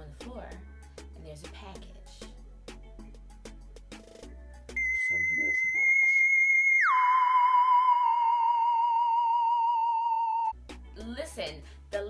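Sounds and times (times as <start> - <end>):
wavering theremin-like electronic tone: 4.8 - 10.6.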